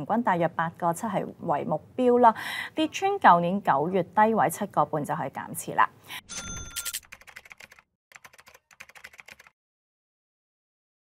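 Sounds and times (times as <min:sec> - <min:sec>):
short chime: 0:06.3 - 0:07.0
typing-like clicks: 0:06.4 - 0:09.6.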